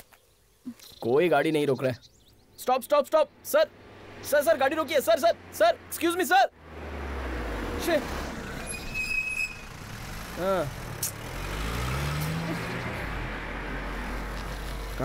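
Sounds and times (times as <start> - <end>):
van driving past: 3.4 - 15.0.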